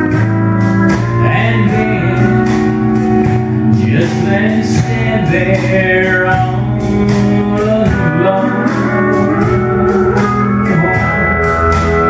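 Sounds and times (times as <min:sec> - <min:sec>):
steel guitar sliding notes: 0:00.0 - 0:12.0
strummed guitar rhythm: 0:00.0 - 0:12.0.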